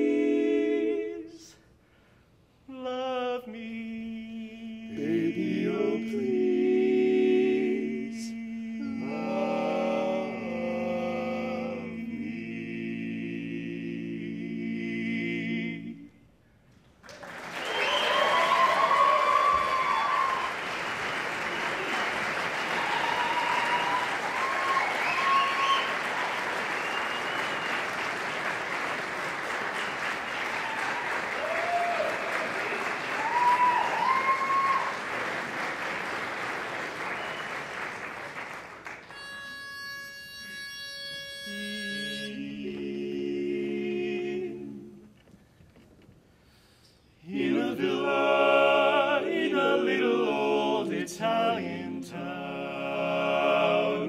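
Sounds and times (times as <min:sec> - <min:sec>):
quartet singing a cappella: 0:00.0 - 0:01.6, 0:02.7 - 0:16.3, 0:41.5 - 0:45.2, 0:47.2 - 0:54.0
audience applauding: 0:17.0 - 0:39.2
crowd whoops and cheers: 0:17.3 - 0:28.0, 0:30.2 - 0:35.1.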